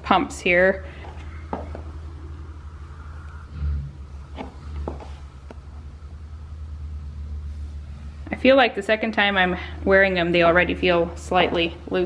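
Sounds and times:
steady low rumble: 0:00.0 - 0:12.0
high heels tapping on laminate: 0:01.0 - 0:02.0, 0:04.4 - 0:05.6.

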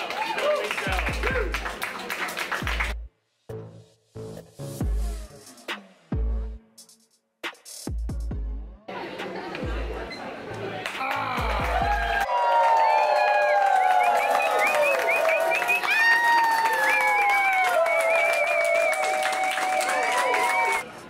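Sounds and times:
crowd clapping and cheering: 0:00.0 - 0:03.1, 0:10.6 - 0:20.9
music: 0:00.6 - 0:12.3.

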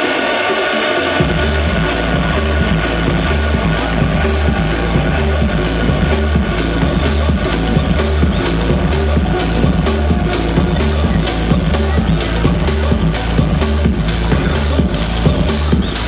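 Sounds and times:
electronic dance music: 0:00.0 - 0:16.0.

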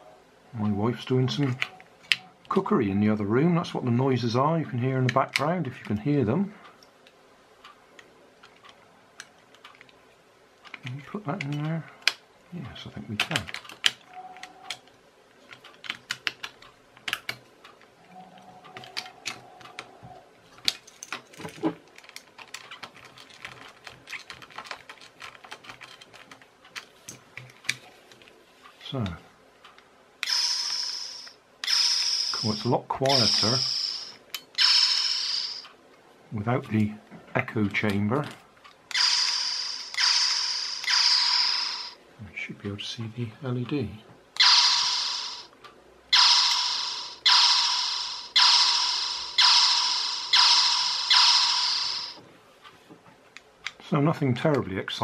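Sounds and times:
plastic parts clicking: 0:20.6 - 0:28.3
toy gun electronic zaps: 0:30.2 - 0:35.7, 0:38.9 - 0:42.0, 0:44.4 - 0:45.5, 0:46.1 - 0:52.2.

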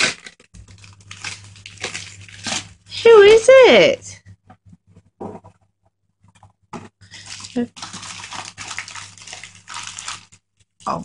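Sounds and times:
wrapping paper rustling: 0:00.0 - 0:03.5, 0:07.0 - 0:10.8.

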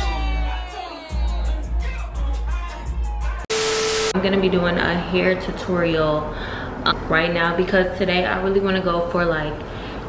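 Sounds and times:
tv static hiss: 0:03.5 - 0:04.2
steady electronic tone: 0:03.5 - 0:04.3.

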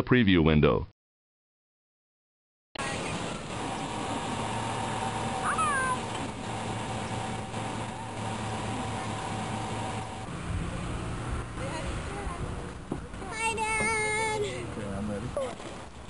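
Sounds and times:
car engine hum: 0:02.8 - 0:16.0
outdoor background noise: 0:02.8 - 0:16.0.

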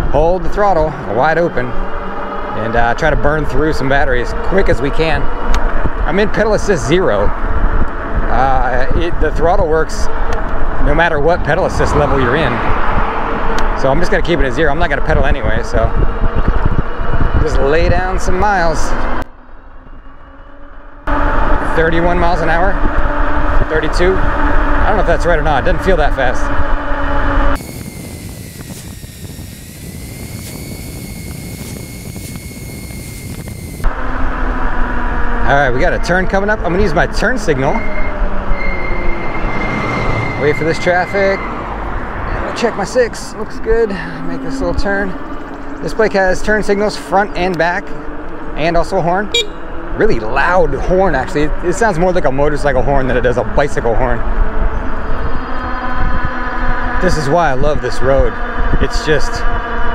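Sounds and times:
road rumble: 0:00.0 - 0:59.9
wind: 0:00.0 - 0:59.9
electric motor whine: 0:25.8 - 0:35.5.

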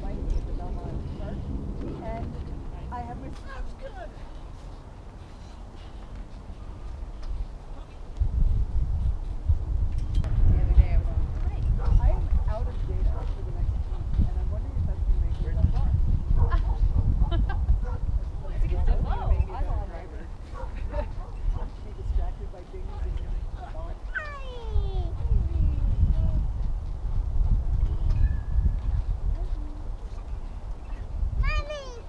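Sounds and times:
low rumble: 0:00.0 - 0:04.6, 0:08.2 - 0:19.5
wind buffeting microphone: 0:00.0 - 0:32.0.

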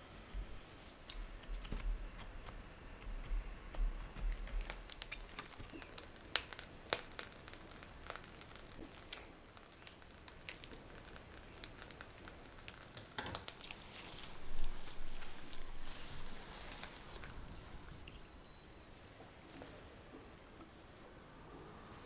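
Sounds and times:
cream squishing from piping bag: 0:00.3 - 0:18.3
plastic crinkling: 0:03.7 - 0:18.3.

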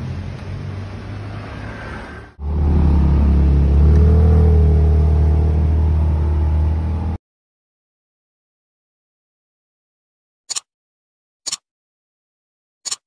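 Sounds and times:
car engine running: 0:02.4 - 0:07.2.

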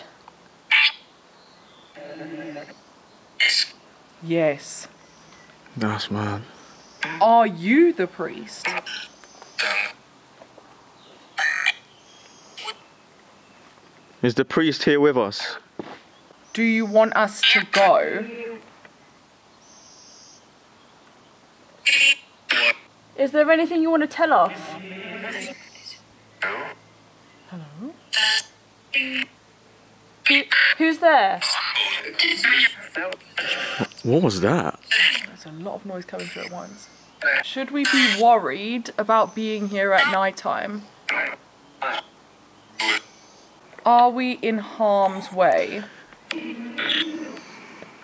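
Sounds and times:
low hiss: 0:00.0 - 0:31.4.

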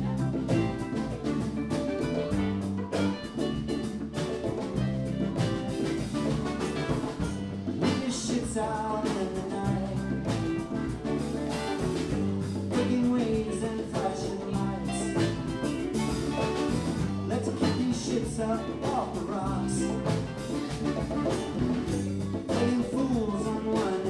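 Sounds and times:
electric guitars: 0:00.0 - 0:24.0
keyboard: 0:00.0 - 0:24.0
lead vocal singing: 0:07.8 - 0:10.6, 0:12.7 - 0:15.6, 0:17.2 - 0:20.2, 0:22.5 - 0:24.0.

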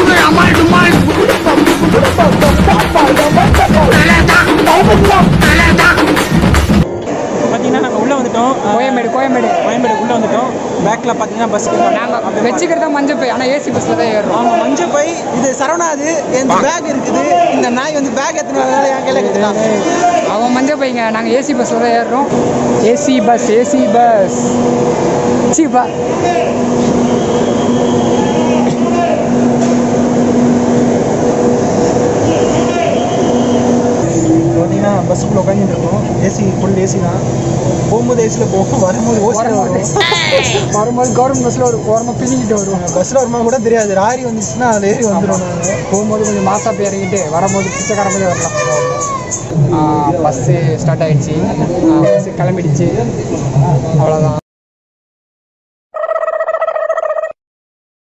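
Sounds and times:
passengers chattering: 0:34.1 - 0:54.4.

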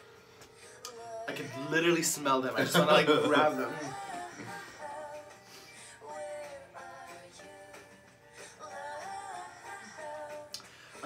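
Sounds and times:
acoustic guitar: 0:00.0 - 0:11.0
woman singing: 0:00.6 - 0:02.1, 0:02.7 - 0:11.0.

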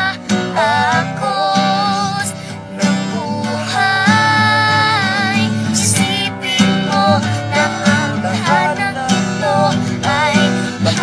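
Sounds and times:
acoustic guitar strumming: 0:00.0 - 0:11.0
boy singing: 0:00.0 - 0:11.0.

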